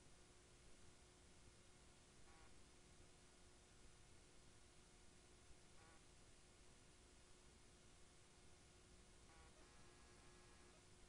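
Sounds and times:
thin steady hum: 0.0s - 11.0s.

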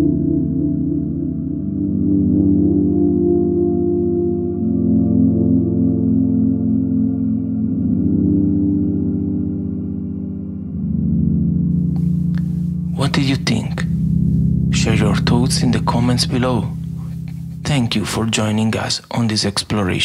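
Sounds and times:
synthesizer ambient pad: 0.0s - 19.2s.

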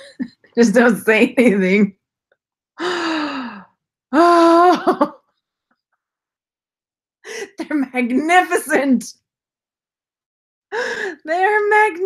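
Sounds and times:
woman sighing: 2.8s - 4.7s.

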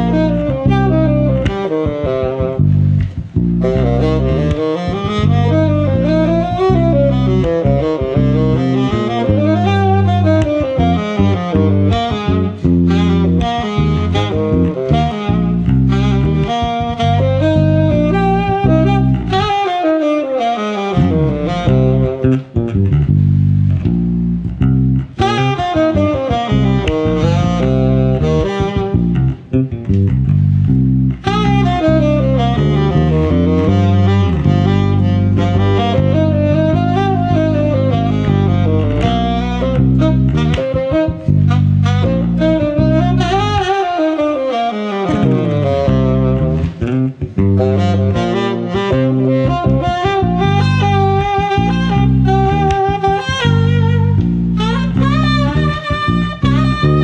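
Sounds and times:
electric bass line: 0.0s - 57.0s
tenor saxophone melody: 0.0s - 57.0s.

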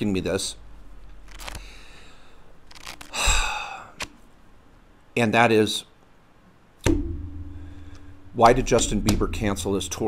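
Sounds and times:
sudden hit: 6.8s - 8.2s.

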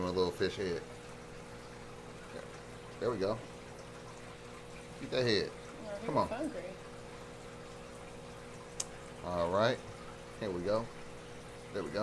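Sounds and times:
pump humming: 0.0s - 12.0s
water flowing and trickling: 0.0s - 12.0s.

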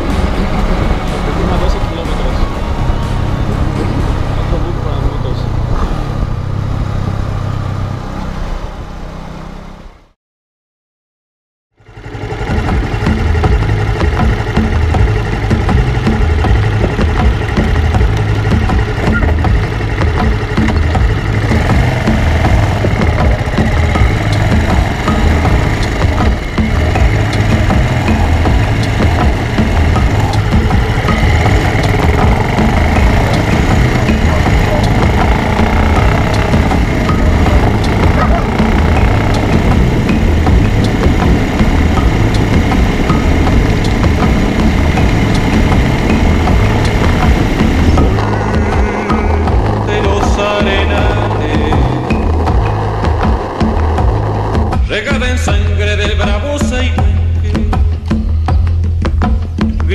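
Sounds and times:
motorcycle engine running: 0.0s - 9.0s, 11.8s - 59.9s.

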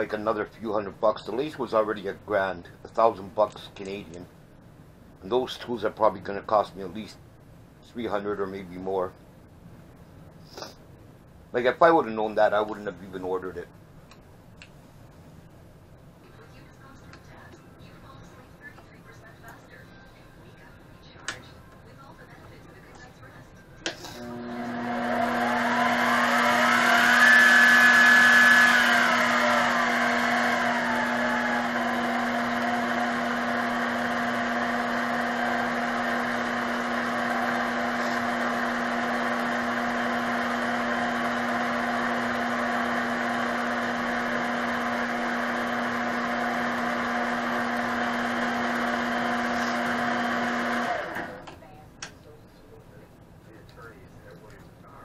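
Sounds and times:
lathe motor whine: 24.2s - 51.5s.

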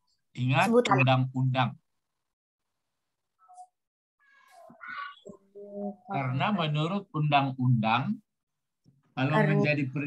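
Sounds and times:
high-pitched vocal call: 4.2s - 6.0s.

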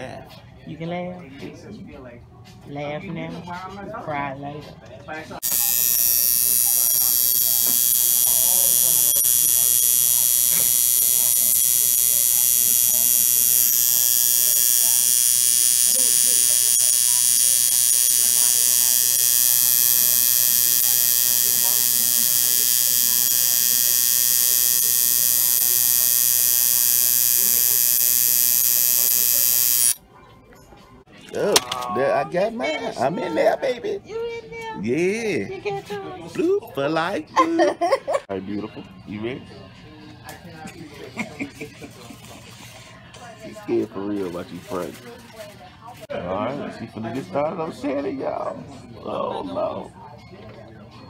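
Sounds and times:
tattoo machine buzzing: 5.4s - 30.0s.

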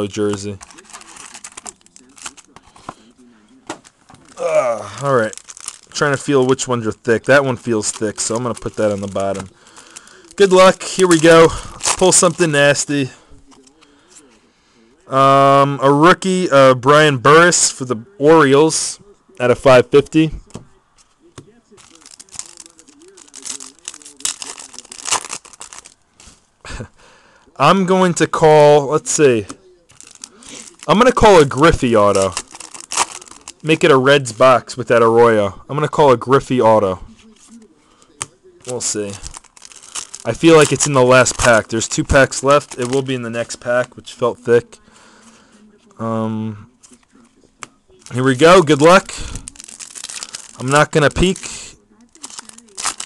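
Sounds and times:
foil packs crinkling: 0.0s - 3.1s, 3.7s - 12.9s, 21.7s - 26.4s, 29.0s - 35.0s, 37.4s - 44.3s, 48.0s - 53.0s
faint speech: 17.8s - 25.2s, 36.7s - 39.3s, 42.7s - 53.0s.

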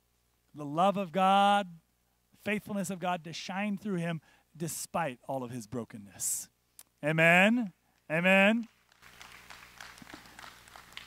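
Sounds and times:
scattered claps: 8.6s - 11.0s.

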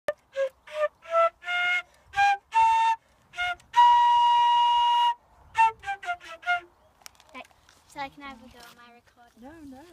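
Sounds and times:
concert flute playing a tune: 0.1s - 6.8s.

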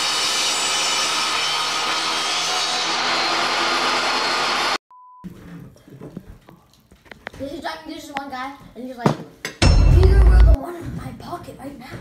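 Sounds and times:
table saw cutting wood: 0.0s - 4.8s.

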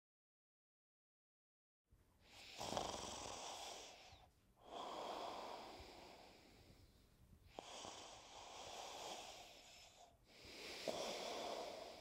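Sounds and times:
person breathing loudly: 2.3s - 6.9s, 7.5s - 12.0s.

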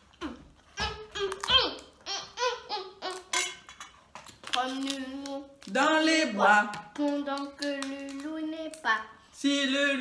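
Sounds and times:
girl and woman sing-song babbling: 4.6s - 10.0s.

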